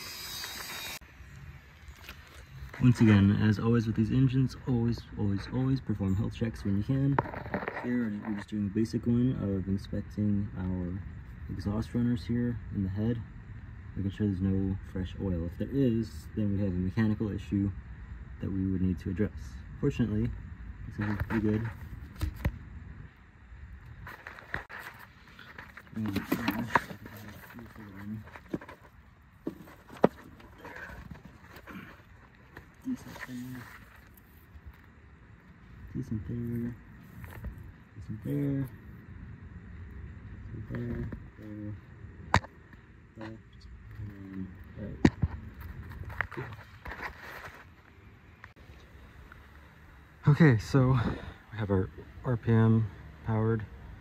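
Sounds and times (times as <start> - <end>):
low steady background noise: 0.0 - 54.0.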